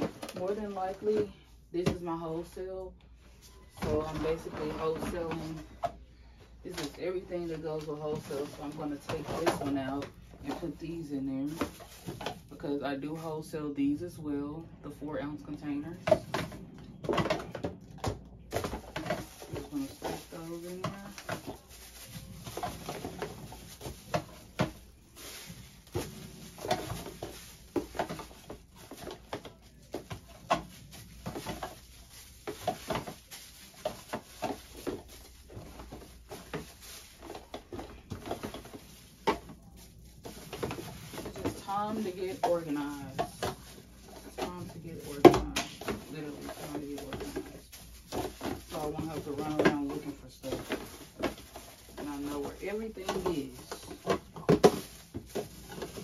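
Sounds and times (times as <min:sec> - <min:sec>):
plastic bags rustling: 0:00.0 - 0:56.0
plastic containers clicking and knocking: 0:06.7 - 0:10.8, 0:15.3 - 0:56.0.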